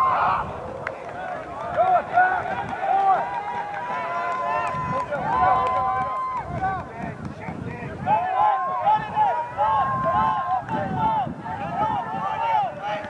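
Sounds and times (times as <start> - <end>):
crowd of voices shouting: 0.0 - 6.8, 8.0 - 13.0.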